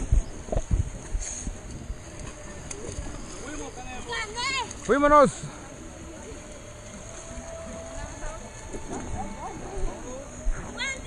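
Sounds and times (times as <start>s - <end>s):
background chatter: 1.4s - 11.0s.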